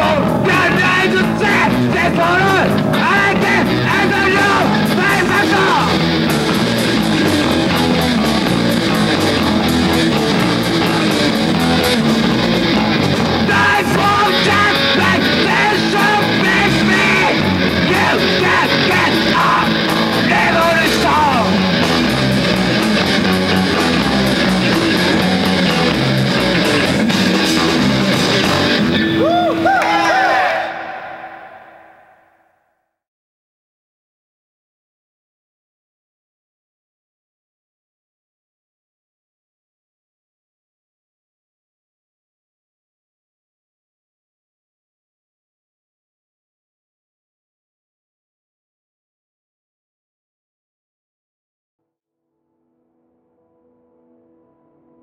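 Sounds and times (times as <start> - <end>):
rock music with electric guitar: 0.0 - 30.4.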